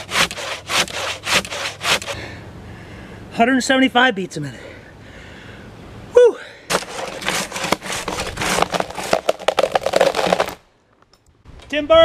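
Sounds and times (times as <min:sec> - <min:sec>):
hand saw cutting log: 0:00.0 - 0:02.2, 0:06.7 - 0:10.6.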